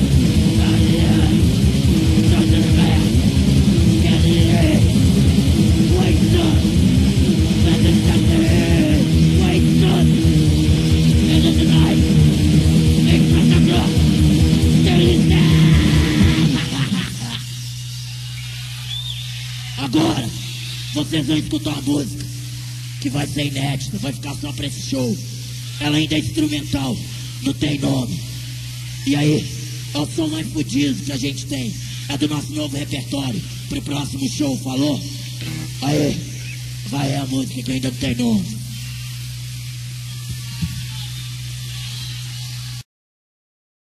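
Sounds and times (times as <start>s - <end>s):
heavy metal band playing: 0.0s - 17.9s, 35.4s - 38.5s
amplifier hum: 0.0s - 41.9s
short whistle: 18.3s - 19.6s
hiss: 38.5s - 40.2s.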